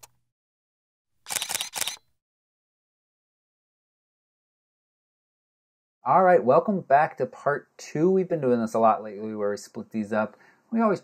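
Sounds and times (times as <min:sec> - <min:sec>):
camera shutter clicks: 0:01.3 - 0:02.1.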